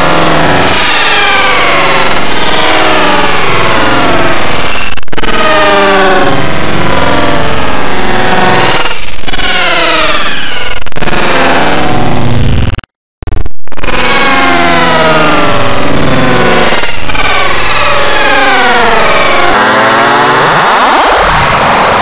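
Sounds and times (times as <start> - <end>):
distorted electronic pitch glides: 0.0 - 22.0.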